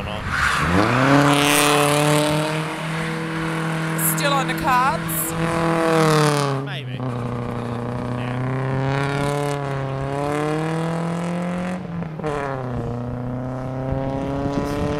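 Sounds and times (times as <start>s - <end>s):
car engine at high revs: 0.0s - 14.9s.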